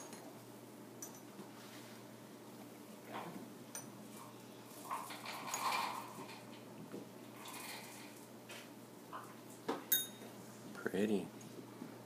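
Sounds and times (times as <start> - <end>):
glass cups clinking: 9.9 - 10.2.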